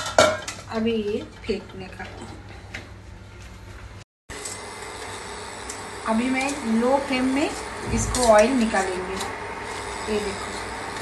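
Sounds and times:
steady low hum: 0:04.7 - 0:11.0.

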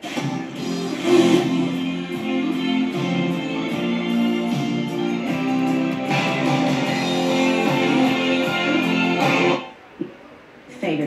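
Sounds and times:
guitar music on radio: 0:00.0 - 0:09.7.

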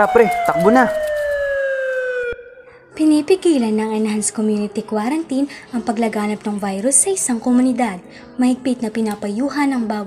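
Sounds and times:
siren wail falling in pitch: 0:00.0 - 0:02.8.

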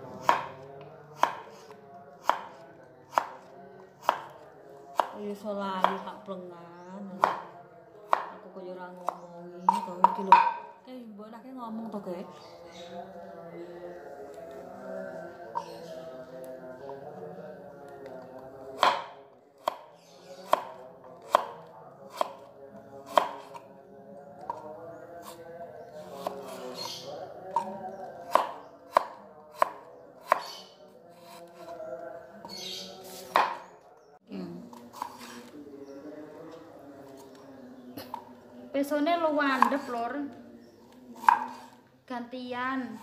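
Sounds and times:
knife chopping on wooden board: 0:00.2 - 0:00.6, 0:01.2 - 0:04.4, 0:05.0 - 0:05.2, 0:07.2 - 0:07.5, 0:09.0 - 0:10.6, 0:18.8 - 0:22.5, 0:23.1 - 0:23.6, 0:28.3 - 0:30.6, 0:33.3 - 0:33.6, 0:39.6 - 0:39.9, 0:41.2 - 0:41.7.

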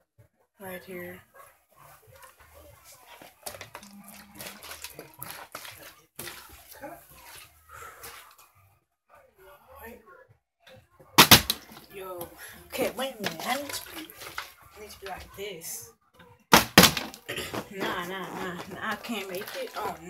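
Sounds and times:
faint voice: 0:01.8 - 0:08.5, 0:17.3 - 0:20.0.

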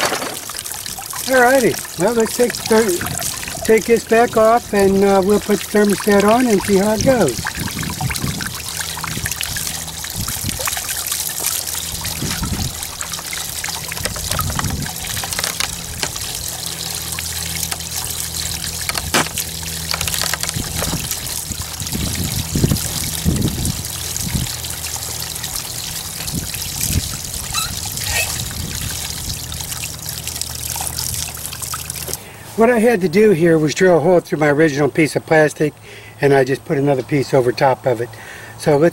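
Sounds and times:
water trickling and splashing: 0:00.0 - 0:35.2
outboard motor idling: 0:00.1 - 0:34.2.

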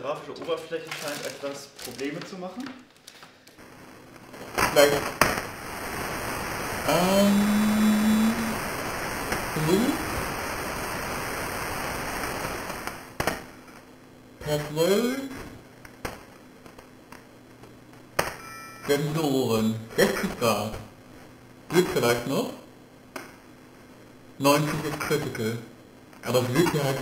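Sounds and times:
steady hiss: 0:03.3 - 0:27.0
chime ringing: 0:18.4 - 0:18.9.

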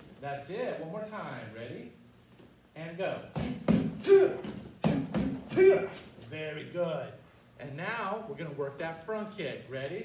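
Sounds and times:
strikes on a kick shield: 0:03.3 - 0:05.8.

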